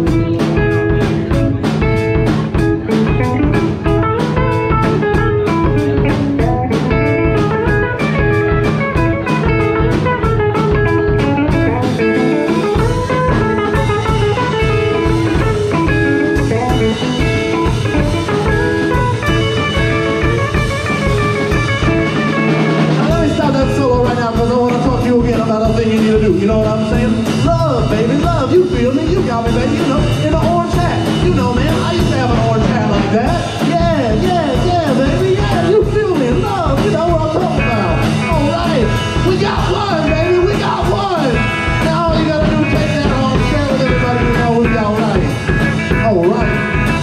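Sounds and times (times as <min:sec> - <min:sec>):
live rock band playing: 0:00.0 - 0:47.0.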